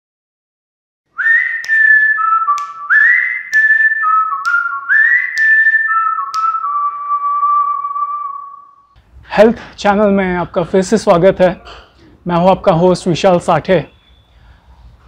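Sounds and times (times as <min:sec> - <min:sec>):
whistled melody: 0:01.1 - 0:09.0.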